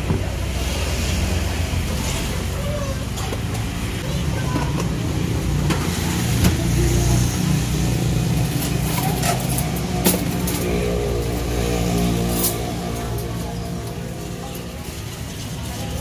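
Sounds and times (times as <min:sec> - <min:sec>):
faint voices: 0:00.0 - 0:16.0.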